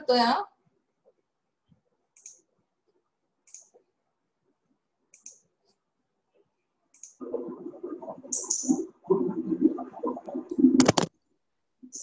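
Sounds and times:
faint mouse clicks: 1.7s - 2.5s, 5.1s - 5.4s.

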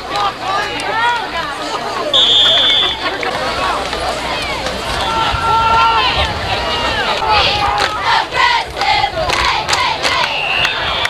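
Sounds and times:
people shouting: 4.2s - 8.7s.

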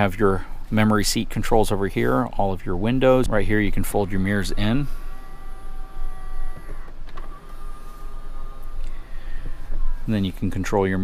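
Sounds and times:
mirror motors whining: 3.9s - 11.0s.

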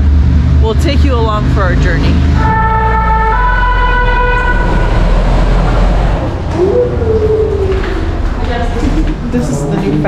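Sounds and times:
street traffic rumble: 0.0s - 10.0s
two-tone siren: 2.4s - 7.6s.

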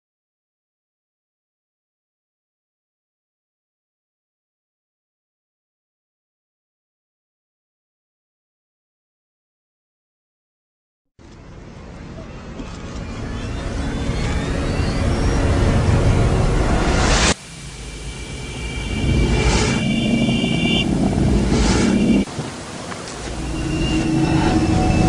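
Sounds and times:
rumbling hissing noise: 13.1s - 25.0s
steady high tones: 13.2s - 22.3s, 23.2s - 25.0s.

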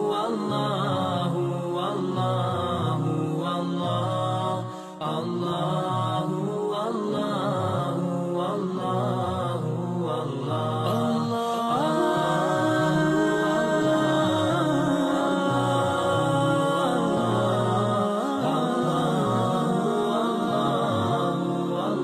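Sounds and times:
voices chanting: 0.0s - 22.0s.

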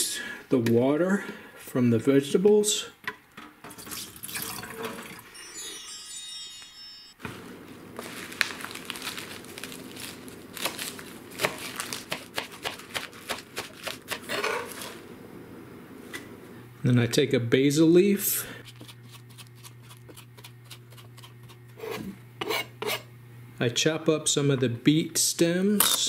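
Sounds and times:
water pouring into sink: 3.7s - 5.3s
knife chopping on plastic board: 11.4s - 14.4s.

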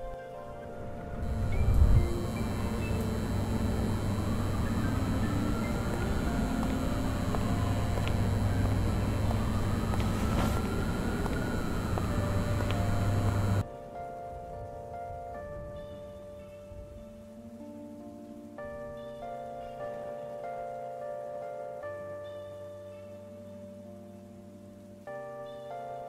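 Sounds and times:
hum: 1.1s - 13.6s
faint rising and falling tone: 1.2s - 13.6s
low ambient rumble: 1.2s - 13.6s.

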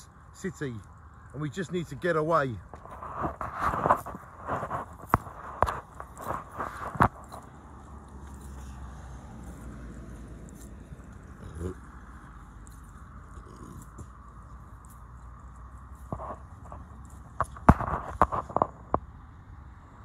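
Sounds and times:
road traffic hum: 0.0s - 20.0s
phone knocks and rubbing: 2.8s - 7.4s, 16.1s - 19.0s.

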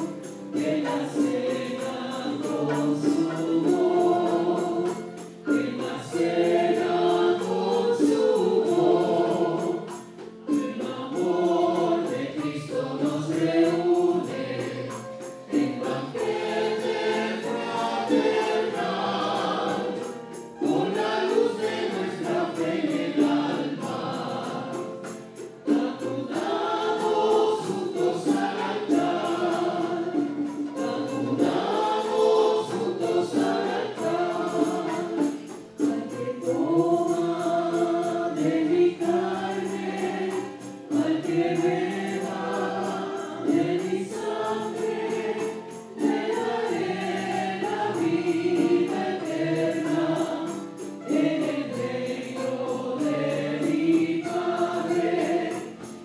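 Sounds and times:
choir singing a hymn: 0.0s - 56.0s
musical backing: 0.0s - 56.0s.

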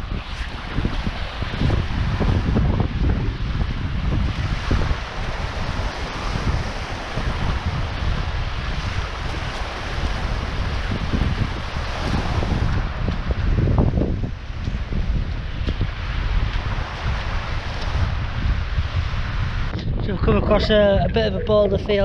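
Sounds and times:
waves washing over sandy beach: 0.0s - 22.0s
wind buffeting microphone: 0.0s - 22.0s.

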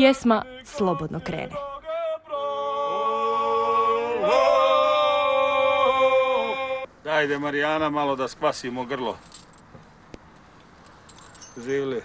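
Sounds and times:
metallic ornaments jingling: 9.0s - 10.0s, 10.7s - 12.0s.

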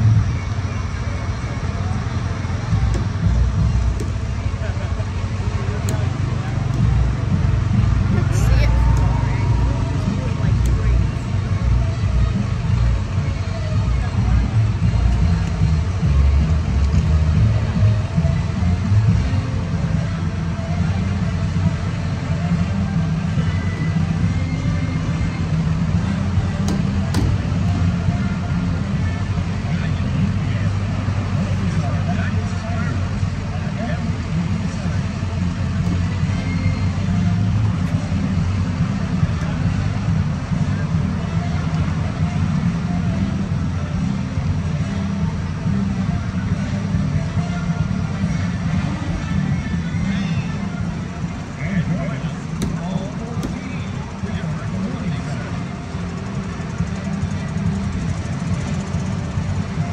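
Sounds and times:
crowd voices: 0.0s - 59.9s
low rumble: 2.6s - 13.3s.

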